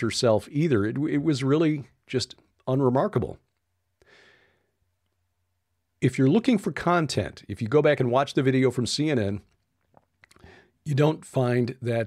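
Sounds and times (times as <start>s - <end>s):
man's intake of breath: 4.0s - 4.8s, 10.4s - 10.8s.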